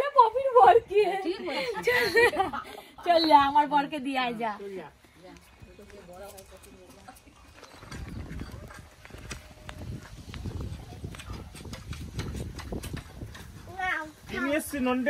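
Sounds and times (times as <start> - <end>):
footsteps on packed earth and concrete: 3.1 - 13.8.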